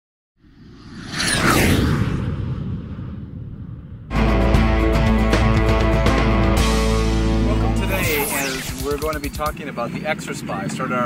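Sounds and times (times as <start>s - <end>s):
deep rumble: 0.4s - 4.6s
whoosh sound effect: 0.5s - 4.0s, 7.8s - 9.6s.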